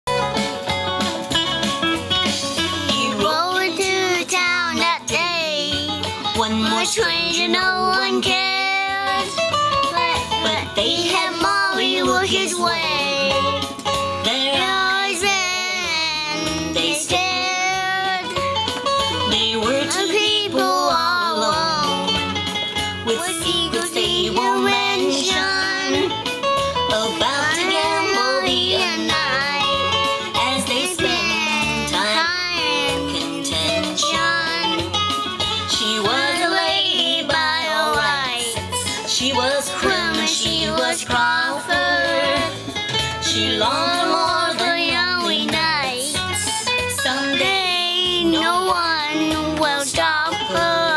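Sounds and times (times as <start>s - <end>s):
guitar accompaniment: 0.0s - 50.9s
boy singing: 2.8s - 35.0s, 35.6s - 42.6s, 43.2s - 50.9s.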